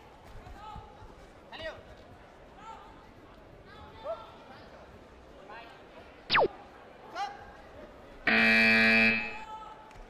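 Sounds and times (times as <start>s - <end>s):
scoreboard buzzer: 8.3s - 9.4s.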